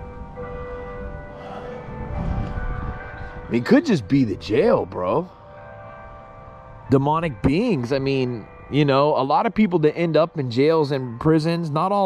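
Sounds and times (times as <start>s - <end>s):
bells ringing: 0.0s - 12.0s.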